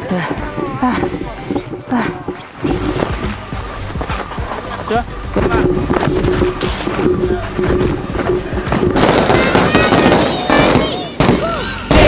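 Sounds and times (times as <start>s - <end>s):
fireworks crackling and popping: 0.0s - 12.0s
music: 0.0s - 12.0s
people shouting: 9.0s - 12.0s.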